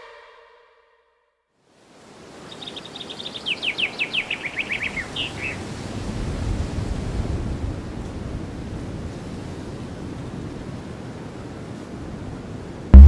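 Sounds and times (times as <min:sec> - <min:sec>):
outdoor hiss: 0:01.7 - 0:05.6.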